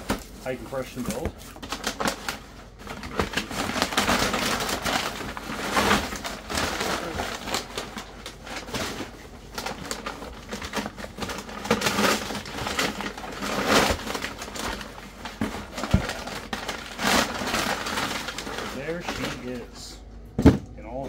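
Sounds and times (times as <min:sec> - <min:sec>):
packing paper rustling: 0:00.0 - 0:20.0.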